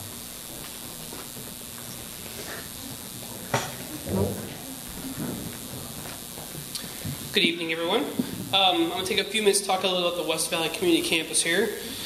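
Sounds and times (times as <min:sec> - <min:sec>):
indistinct voices murmuring: 0:01.8 - 0:12.0.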